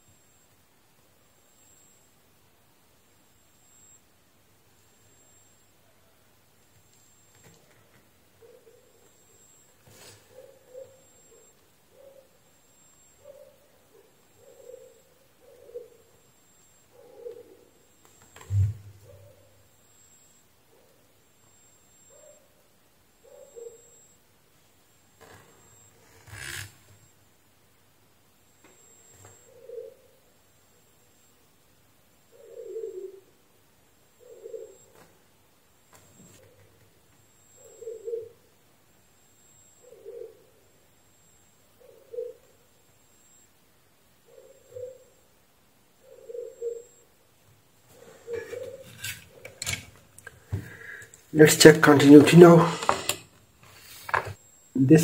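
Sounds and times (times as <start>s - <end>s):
dove cooing: 8.4s - 12.4s, 13.2s - 16.2s, 16.9s - 17.8s, 18.5s - 19.6s, 23.2s - 23.9s, 29.2s - 30.3s, 32.3s - 33.4s, 34.1s - 35.1s, 37.5s - 38.5s, 39.7s - 40.7s, 41.8s - 42.6s, 44.2s - 45.2s, 46.0s - 47.0s, 47.9s - 49.7s.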